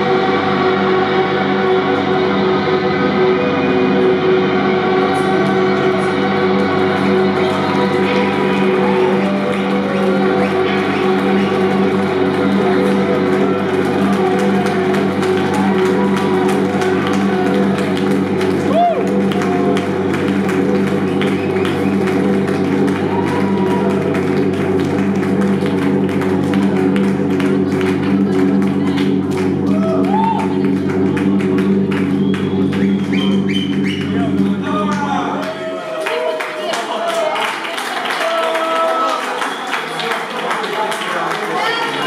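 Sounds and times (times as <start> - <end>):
rock band droning chord: 0.0 - 35.9.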